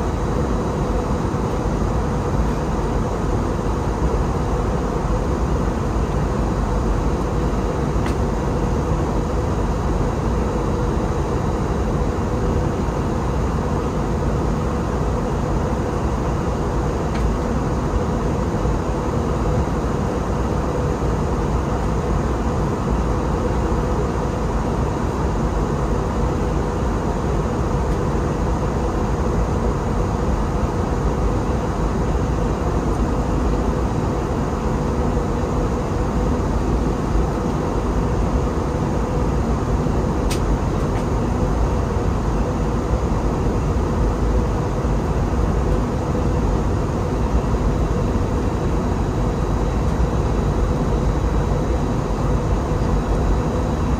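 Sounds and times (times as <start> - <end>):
airplane cabin engine drone: 0.0 - 53.9.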